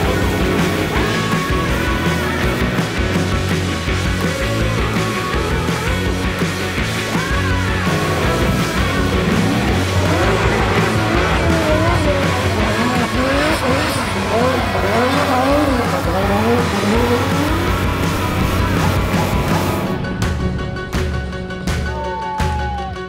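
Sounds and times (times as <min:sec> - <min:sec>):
car engine revving: 0:00.0 - 0:21.8
music with steady bass line: 0:00.0 - 0:23.0.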